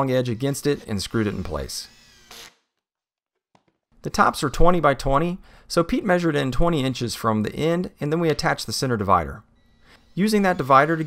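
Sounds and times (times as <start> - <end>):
cordless drill driving a screw: 0.0 - 2.7, 9.9 - 11.0.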